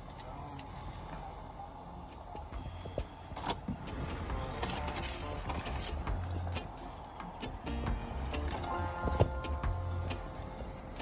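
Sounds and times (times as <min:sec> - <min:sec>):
car idling: 0:00.0 - 0:11.0
traffic rumble: 0:00.0 - 0:11.0.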